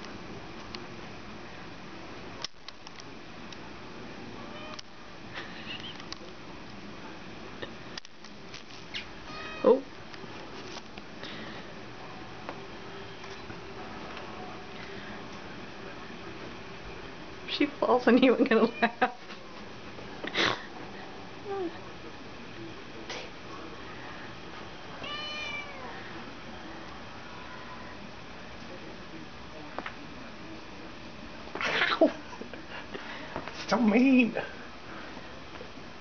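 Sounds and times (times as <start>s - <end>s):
kitten meowing: 25.0s - 25.8s.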